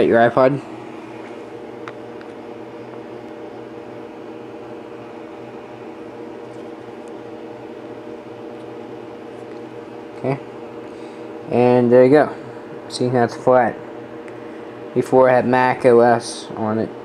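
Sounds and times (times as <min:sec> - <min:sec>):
mechanical room hum: 0:00.0 - 0:17.0.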